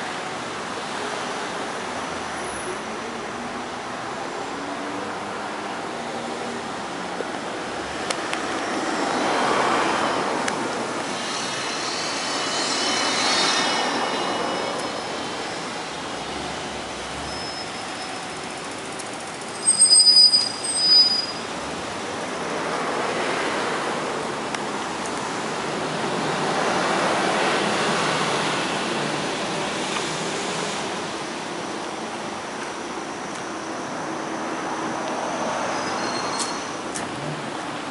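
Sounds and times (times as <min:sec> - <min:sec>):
road traffic passing: 0:00.0 - 0:37.9.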